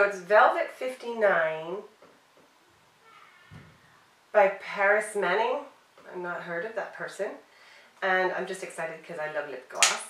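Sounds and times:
soft low thump: 0:03.5 - 0:03.9.

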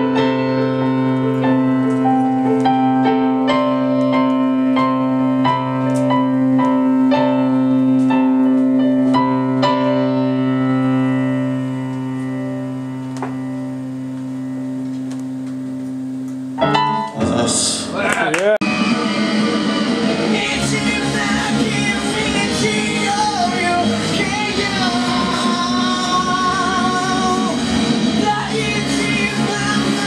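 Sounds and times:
band with guitar: 0:00.0 - 0:30.0
electric keyboard playing: 0:00.0 - 0:30.0.

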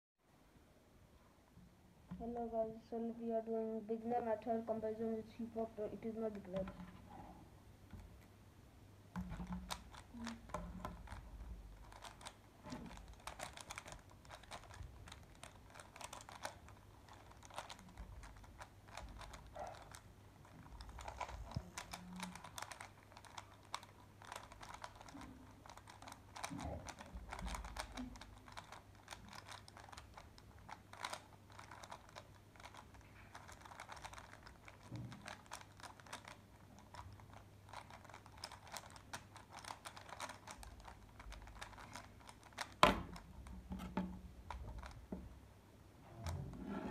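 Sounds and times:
puzzle cube plastic clicks: 0:09.1 - 0:45.2.

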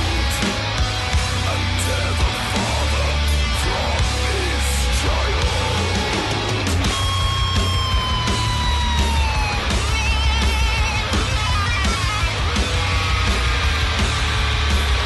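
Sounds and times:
heavy metal song: 0:00.0 - 0:15.0.

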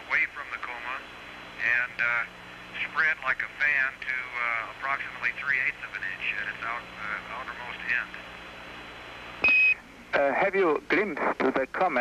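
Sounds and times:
radio line hiss: 0:00.0 - 0:12.0.

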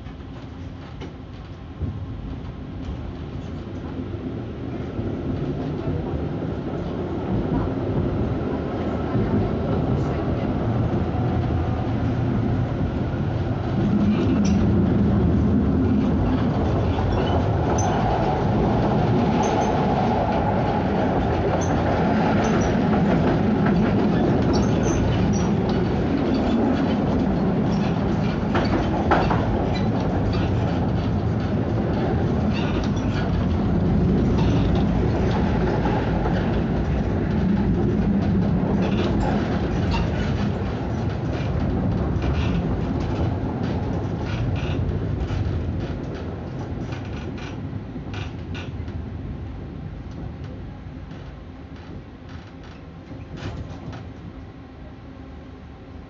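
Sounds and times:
tram wheels rumbling on rails: 0:00.0 - 0:56.0.

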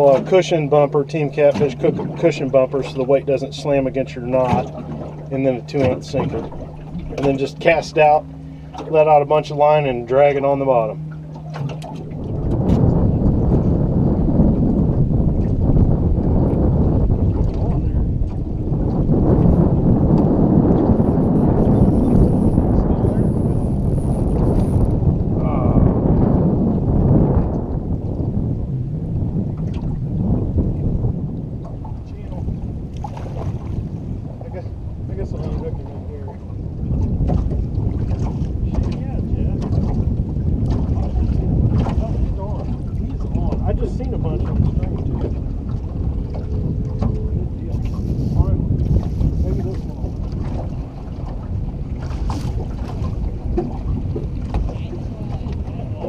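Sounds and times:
water slapping against hull: 0:00.0 - 0:56.0
wind buffeting microphone: 0:00.0 - 0:56.0.

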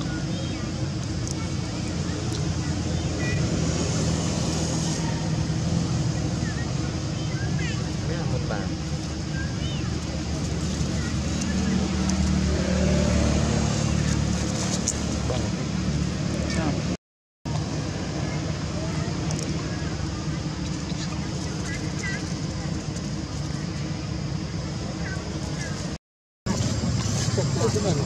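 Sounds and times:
low engine rumble: 0:00.0 - 0:28.0
road traffic: 0:00.0 - 0:28.0.

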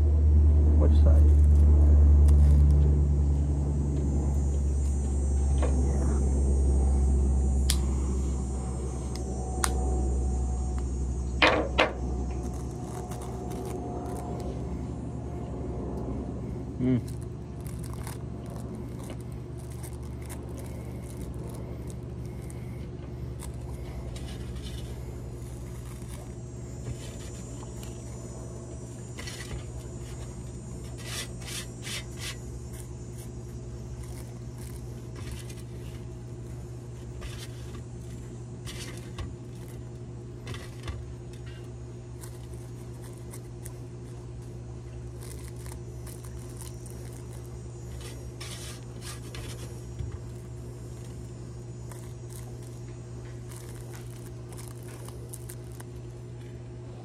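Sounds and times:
steady low hum: 0:00.0 - 0:57.0
rolling paper crinkling: 0:01.2 - 0:02.9, 0:12.2 - 0:14.8, 0:17.0 - 0:28.2, 0:29.2 - 0:56.8.

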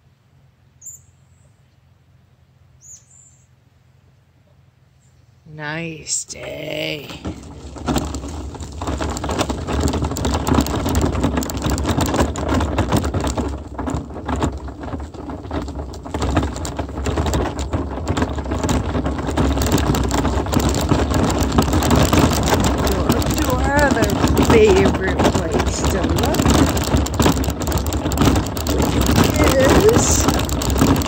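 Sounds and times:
wheels crunching on gravel: 0:05.8 - 0:31.0.

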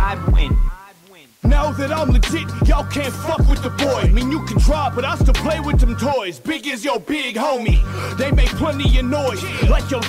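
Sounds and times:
trap music with heavy bass: 0:00.0 - 0:10.0
vocal line: 0:00.0 - 0:10.0.

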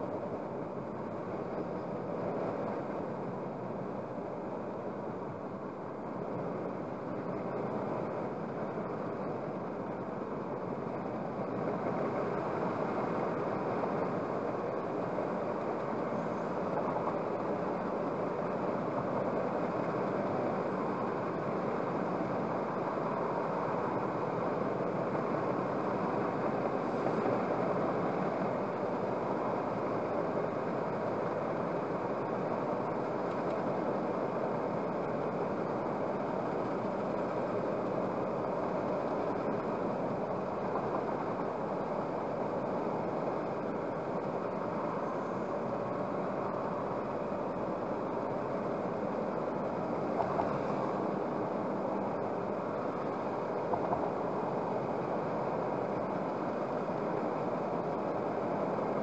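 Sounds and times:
car road noise inside: 0:00.0 - 0:59.0.

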